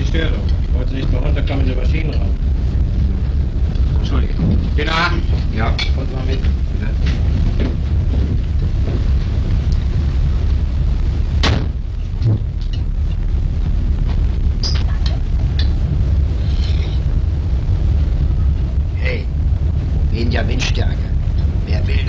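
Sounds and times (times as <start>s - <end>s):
ship engines rumbling: 0.0s - 22.0s.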